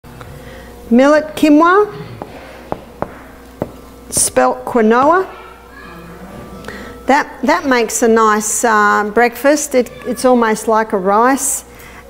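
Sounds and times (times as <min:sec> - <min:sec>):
faint room hum: 0:00.1 - 0:12.0
marker tapping on whiteboard: 0:02.2 - 0:04.3.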